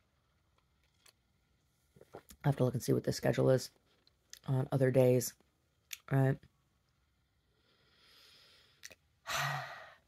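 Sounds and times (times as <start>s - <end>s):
woman breathing in: 7.6s - 10.0s
woman sighing: 9.2s - 10.0s.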